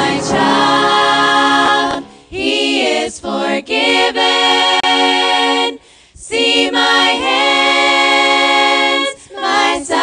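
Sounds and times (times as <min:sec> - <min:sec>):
female a cappella group singing: 0:00.0 - 0:10.0.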